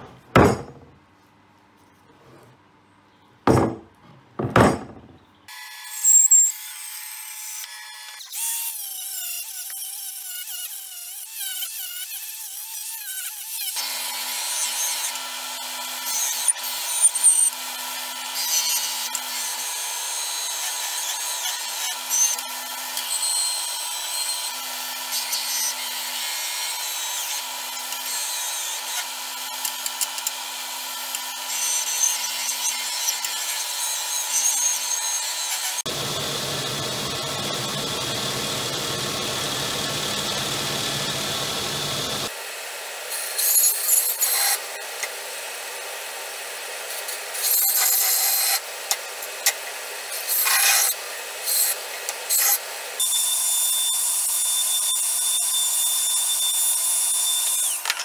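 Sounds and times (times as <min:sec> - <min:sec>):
sander motor hum: 0:35.8 - 0:42.3.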